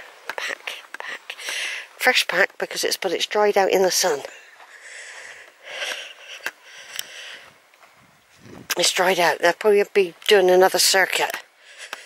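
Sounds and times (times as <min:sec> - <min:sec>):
sharp clicks: 0:00.2 - 0:01.7
person breathing close to microphone: 0:00.8 - 0:02.0, 0:04.3 - 0:07.7, 0:11.5 - 0:12.0.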